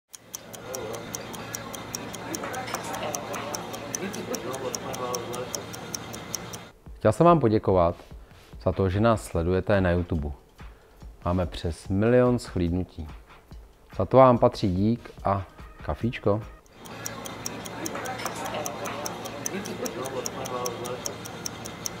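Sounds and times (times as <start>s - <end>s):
fast even ticking: 0.1s - 6.7s, 16.6s - 22.0s
murmur of voices: 0.4s - 6.7s, 16.8s - 22.0s.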